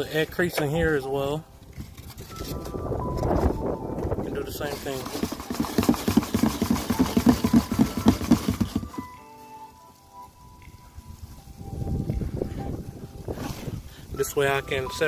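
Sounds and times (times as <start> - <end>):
plastic tub of roaches rattling: 4.5 - 9.1.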